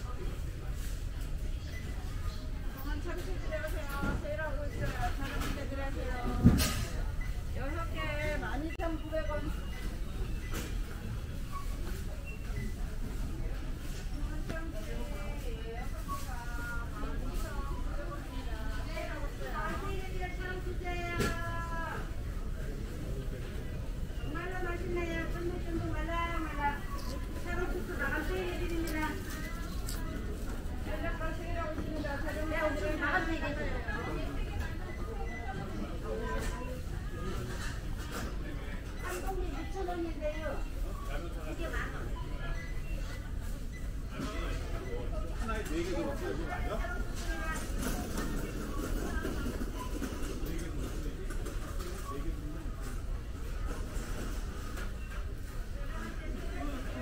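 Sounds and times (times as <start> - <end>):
shoppers' voices: 0.0 - 57.0.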